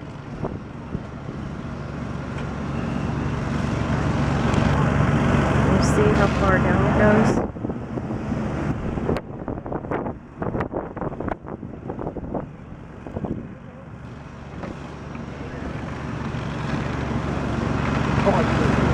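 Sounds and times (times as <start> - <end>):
low steady rumble: 3.3 - 18.9.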